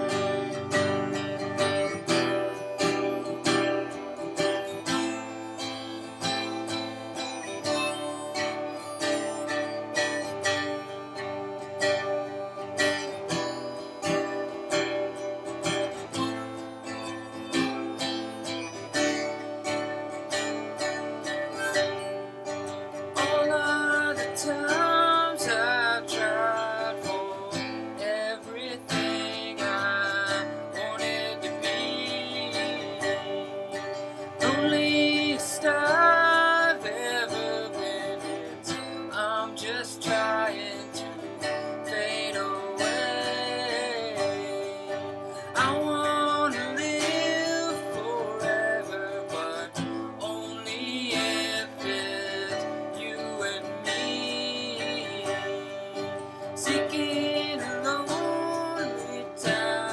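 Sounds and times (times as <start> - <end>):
harmonica playing: 0.0 - 39.2
acoustic guitar strumming: 0.0 - 59.9.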